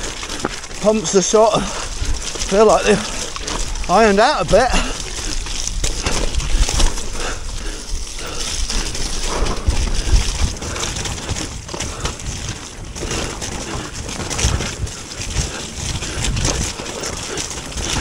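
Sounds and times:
bike rattling over bumps: 0:00.0 - 0:18.0
tyres splashing through mud: 0:00.0 - 0:18.0
wind rushing over microphone: 0:00.8 - 0:18.0.

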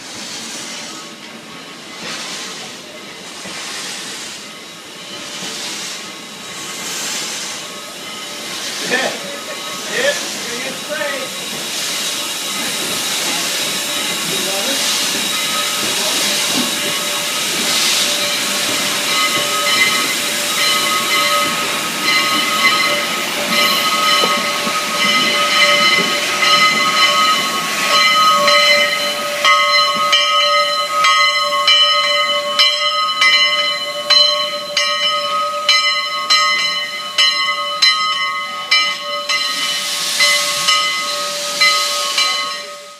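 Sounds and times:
steam hissing: 0:00.0 - 0:42.9
locomotive bell clanging: 0:00.6 - 0:42.9.

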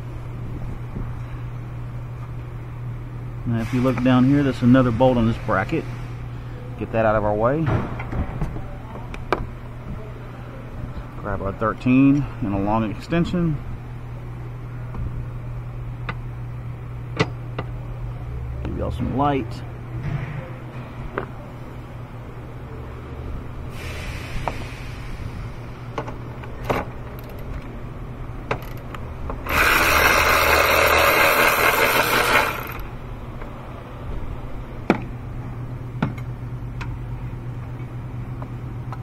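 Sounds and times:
ratchet clicking: 0:27.1 - 0:27.5, 0:28.5 - 0:32.9.

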